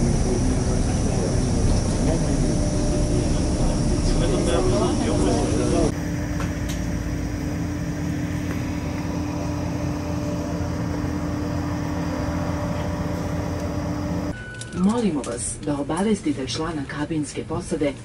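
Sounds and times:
turboprop engine drone: 0:00.0 - 0:14.4.

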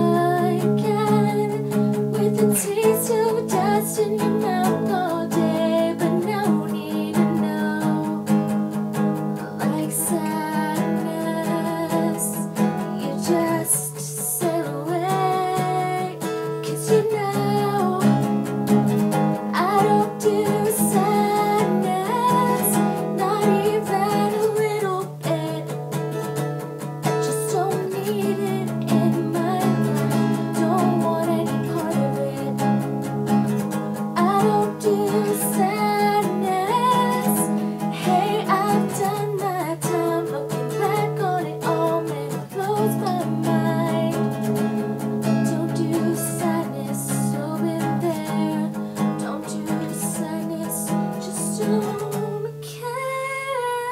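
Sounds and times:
woman singing: 0:00.0 - 0:08.6, 0:09.3 - 0:26.4, 0:27.0 - 0:53.9
strummed acoustic guitar: 0:00.0 - 0:53.9.

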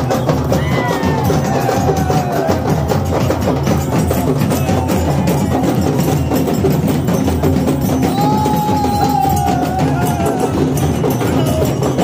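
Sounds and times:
drums beating fast rhythm: 0:00.0 - 0:12.0.

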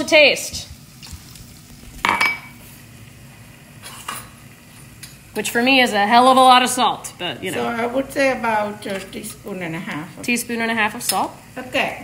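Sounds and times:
metal kitchenware clinking: 0:02.0 - 0:02.6.

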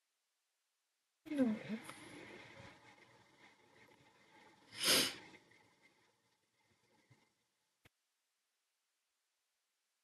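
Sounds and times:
rush of breath: 0:04.7 - 0:05.7.

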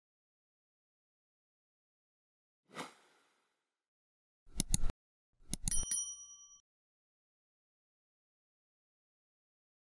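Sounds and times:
mouse clicks: 0:04.5 - 0:04.9
notification bell ding: 0:05.6 - 0:06.6.

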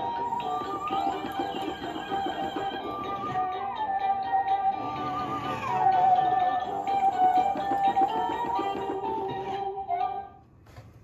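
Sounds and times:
electronic toy music: 0:00.0 - 0:10.4.

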